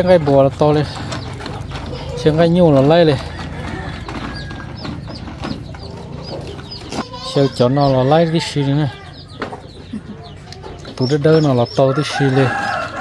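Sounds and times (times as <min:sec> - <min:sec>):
chickens chirping: 0:00.0 - 0:13.0.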